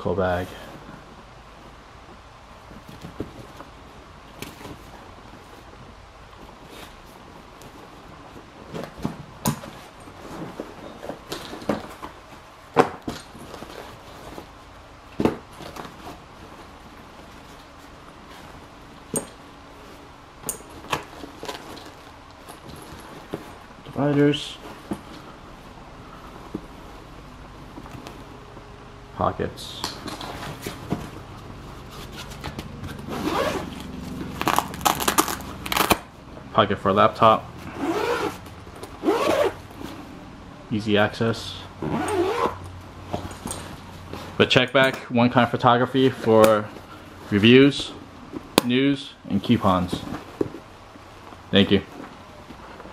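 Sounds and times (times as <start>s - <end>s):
fabric rustling: 0.3s - 29.2s, 30.0s - 36.4s, 37.0s - 40.5s, 41.8s - 44.6s, 45.5s - 52.9s
fabric rubbing: 30.3s - 36.1s, 37.6s - 40.2s, 41.8s - 44.5s
zipper being pulled open: 31.8s - 36.1s, 37.6s - 40.0s, 41.8s - 42.6s.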